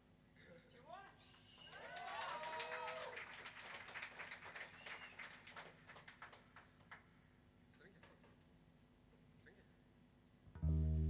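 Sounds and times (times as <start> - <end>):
audience clapping: 1.5 - 7.1.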